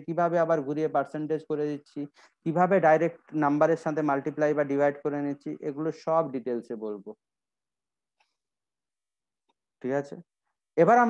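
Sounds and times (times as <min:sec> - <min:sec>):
man speaking: 0:00.0 - 0:07.2, 0:09.8 - 0:10.2, 0:10.8 - 0:11.0.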